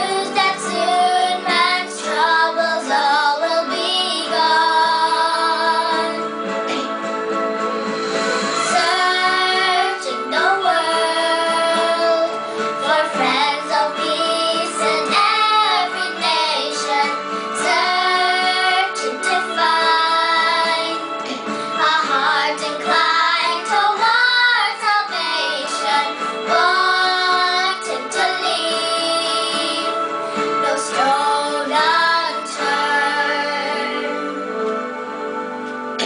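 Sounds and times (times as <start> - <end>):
girls singing a hymn: 0.0 - 6.9, 8.6 - 34.7
instrumental accompaniment of held notes: 0.0 - 36.0.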